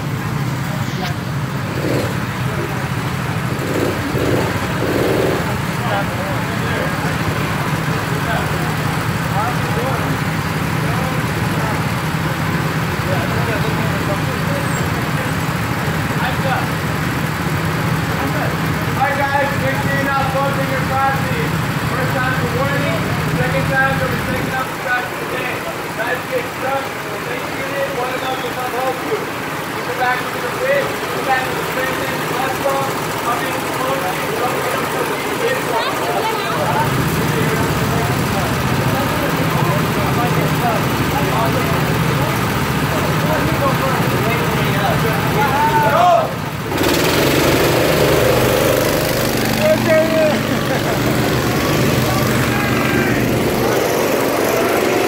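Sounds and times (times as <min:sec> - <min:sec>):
people talking: 0:00.0 - 0:16.8, 0:17.8 - 0:46.5, 0:48.3 - 0:55.0
go-kart engines idling: 0:00.0 - 0:55.0.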